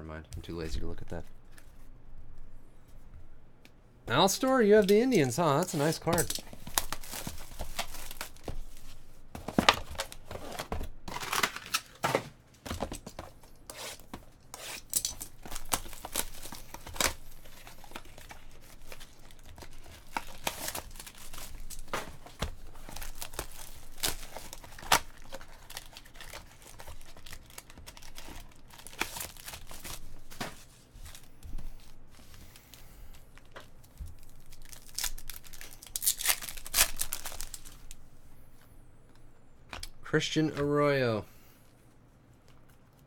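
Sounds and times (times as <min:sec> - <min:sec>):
shrink wrap crinkling and tearing: 0:04.1 - 0:09.1, 0:14.6 - 0:30.4, 0:33.2 - 0:38.0
foil packs handled: 0:04.1 - 0:14.2, 0:14.8 - 0:38.0.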